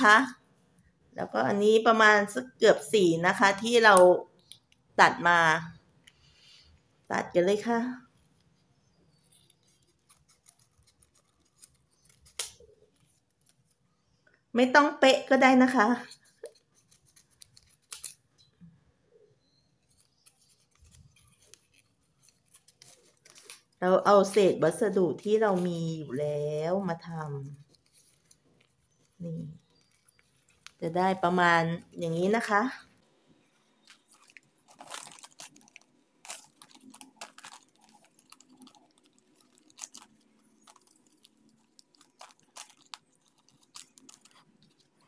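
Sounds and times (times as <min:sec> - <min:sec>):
paper rustle: 0:09.1 - 0:13.8, 0:16.0 - 0:18.2, 0:19.8 - 0:31.4, 0:33.4 - 0:45.0
scissors snipping paper: 0:09.2 - 0:13.8, 0:16.4 - 0:18.2, 0:19.8 - 0:25.8, 0:26.6 - 0:31.4, 0:33.8 - 0:45.0.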